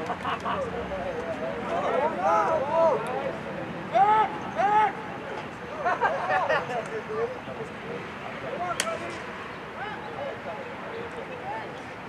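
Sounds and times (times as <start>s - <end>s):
people shouting on a field: 1.6s - 5.4s.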